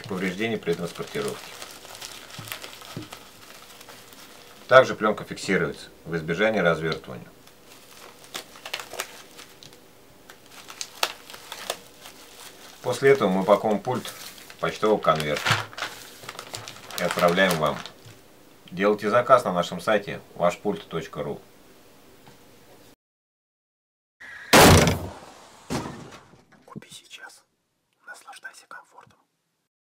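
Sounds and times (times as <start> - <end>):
bubble wrap crinkling: 0.0 - 5.4, 6.8 - 18.2
person whispering: 26.6 - 29.3.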